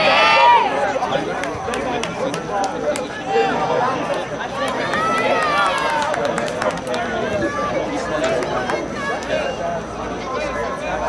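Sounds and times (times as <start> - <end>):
long drawn-out shout: 0.0 - 1.0
players and spectators shouting: 0.0 - 11.0.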